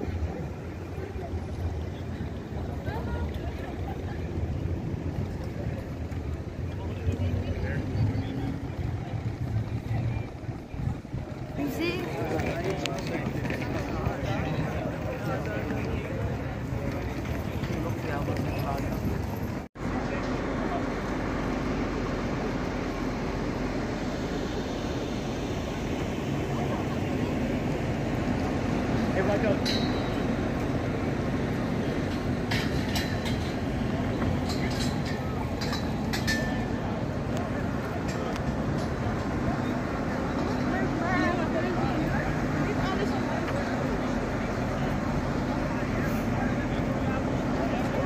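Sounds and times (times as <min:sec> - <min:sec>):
pedestrians chatting: 0:00.0 - 0:48.0
traffic rumble: 0:00.0 - 0:48.0
voices of passers-by: 0:00.0 - 0:48.0.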